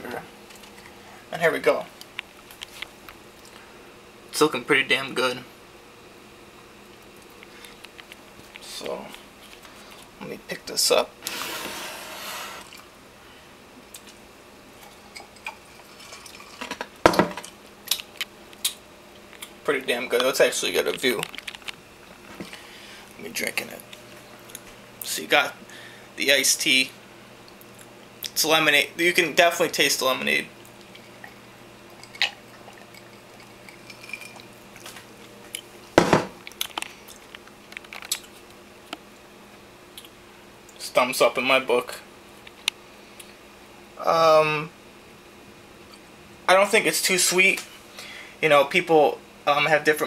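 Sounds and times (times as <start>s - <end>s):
glass knocking on countertop: 36.0s - 36.3s.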